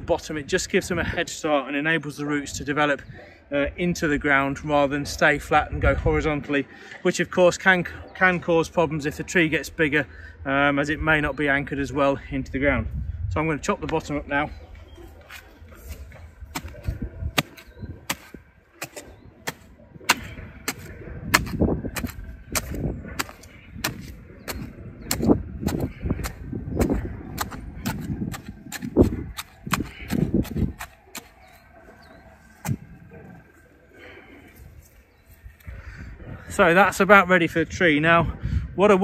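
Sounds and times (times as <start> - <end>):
spade chopping into stony soil: 15.3 - 31.4.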